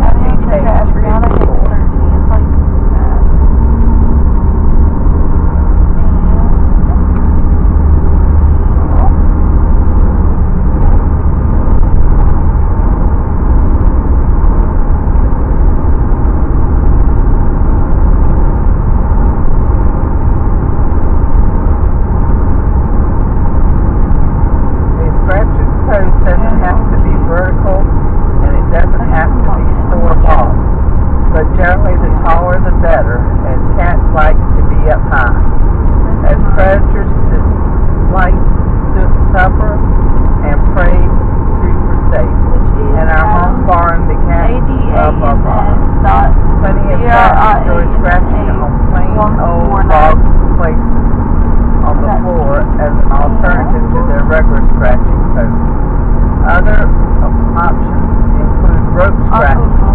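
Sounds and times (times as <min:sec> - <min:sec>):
person talking: 0:00.0 - 0:03.3, 0:25.0 - 0:30.6, 0:31.4 - 0:35.4, 0:36.1 - 0:39.8, 0:40.4 - 0:50.8, 0:51.8 - 0:55.5, 0:56.4 - 0:59.9
car cabin rumble: 0:00.0 - 0:59.9.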